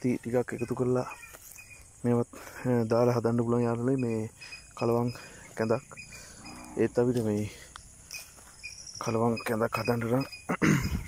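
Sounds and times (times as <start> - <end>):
person speaking: 0.0 - 7.8
insects chirring: 0.0 - 11.0.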